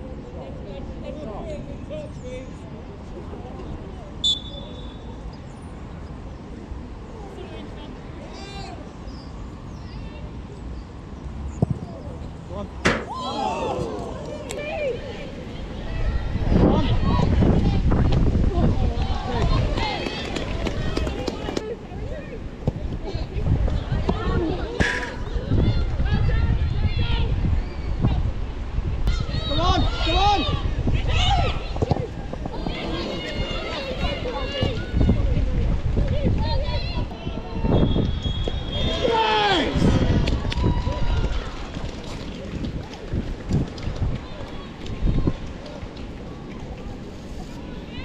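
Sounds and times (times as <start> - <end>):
players calling out: 11.8 - 16.0
sharp knocks: 12.8 - 13.2
players shouting: 12.8 - 17.9, 29.1 - 35.4, 38.5 - 41.4.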